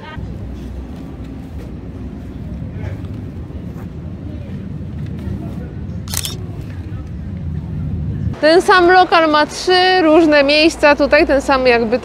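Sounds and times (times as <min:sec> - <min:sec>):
low street rumble: 0:00.0 - 0:12.0
camera shutter click: 0:06.1 - 0:06.4.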